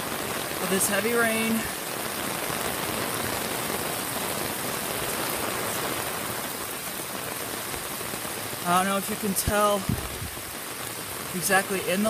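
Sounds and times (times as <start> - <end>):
heavy rain splashing on water: 0.0 - 12.0.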